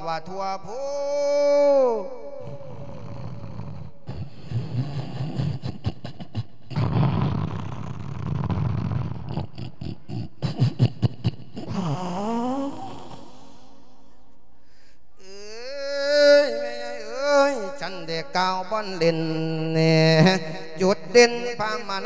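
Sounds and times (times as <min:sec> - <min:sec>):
man wailing cry: 0:00.0 - 0:03.0, 0:15.2 - 0:18.1
man sobbing and breathing hard: 0:00.0 - 0:07.5, 0:09.2 - 0:17.8
man gasping: 0:11.6 - 0:15.5.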